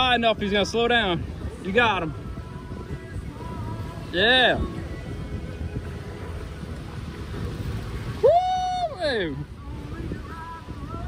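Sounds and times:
sea waves: 0:00.0 - 0:11.0
wind: 0:00.0 - 0:11.0
person cheering woo: 0:08.2 - 0:09.4.

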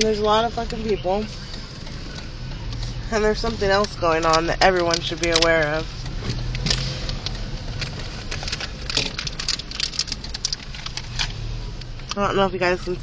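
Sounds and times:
car engine hum: 0:00.0 - 0:13.0
light clicks and rattles: 0:00.0 - 0:13.0.

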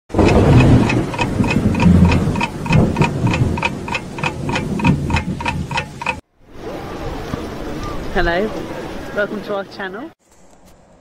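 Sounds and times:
clock ticking: 0:00.1 - 0:06.2.

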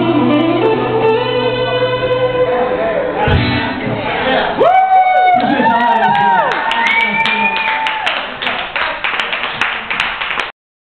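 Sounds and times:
audience clapping: 0:05.4 - 0:10.6.

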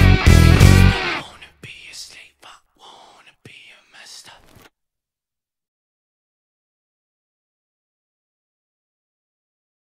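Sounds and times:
band music with bass: 0:00.0 - 0:01.0
faint whispering voice: 0:01.1 - 0:04.7.

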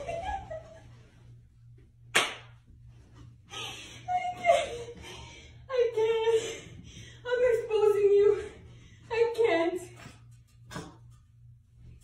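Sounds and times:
hand slapping smack: 0:02.1 - 0:02.5.

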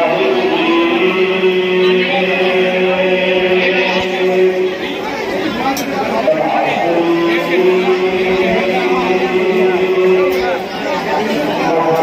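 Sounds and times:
crowd chatter: 0:00.0 - 0:12.0
devotional chanting: 0:00.0 - 0:12.0.

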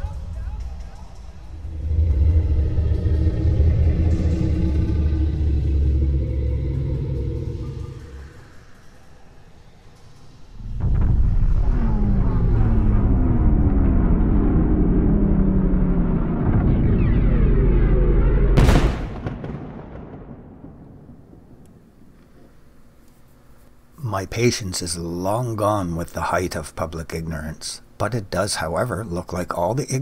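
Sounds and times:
deep cinematic rumble: 0:00.0 - 0:09.1, 0:10.4 - 0:22.1
falling synthesized tones: 0:01.5 - 0:09.0.

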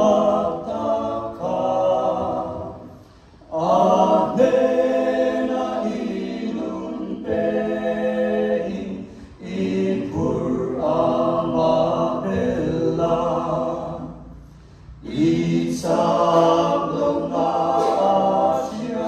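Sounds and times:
a cappella group singing in harmony: 0:00.0 - 0:19.0.

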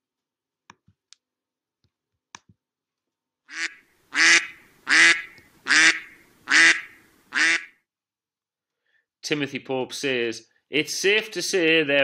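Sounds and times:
duck quacking: 0:03.5 - 0:07.8.

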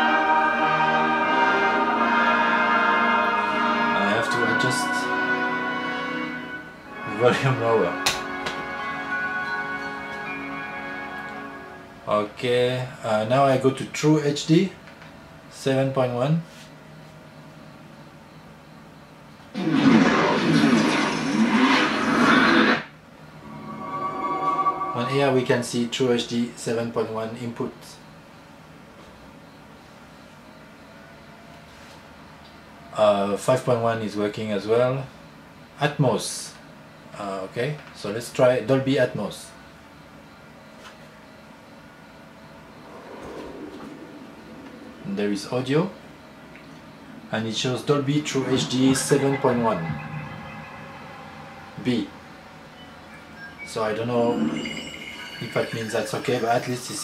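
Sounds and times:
swirling whoosh: 0:23.4 - 0:25.4, 0:42.4 - 0:53.0
steady synth chord: 0:23.4 - 0:25.5, 0:42.5 - 0:53.6
faint low swell: 0:23.4 - 0:25.7, 0:42.0 - 0:54.8.

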